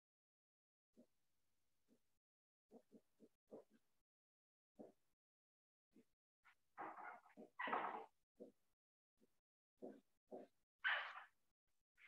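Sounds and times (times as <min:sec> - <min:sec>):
whiteboard marker squeaking: 0:09.8 - 0:11.3.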